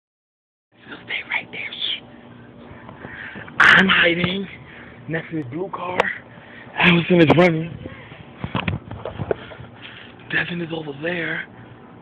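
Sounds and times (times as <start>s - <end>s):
person whispering: 0.9s - 2.0s.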